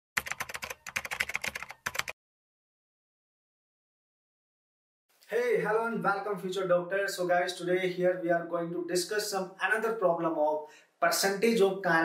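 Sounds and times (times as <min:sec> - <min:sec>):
fast keyboard typing: 0:00.2 - 0:02.2.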